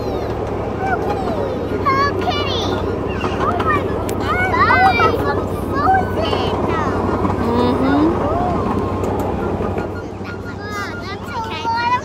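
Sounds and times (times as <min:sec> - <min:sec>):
faint voices: 0:00.0 - 0:12.0
miniature train running on track: 0:00.0 - 0:12.0.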